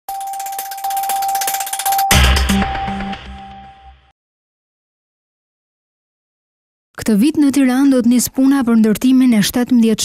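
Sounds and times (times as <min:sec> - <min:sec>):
rapid even ticking: 0:00.1 - 0:03.3
steady high electronic tone: 0:00.1 - 0:04.1.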